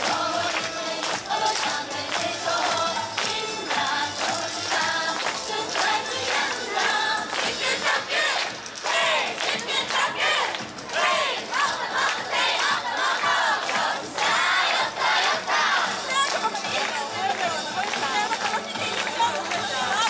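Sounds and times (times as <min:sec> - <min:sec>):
group shouting chant calls: 0:07.8 - 0:15.9.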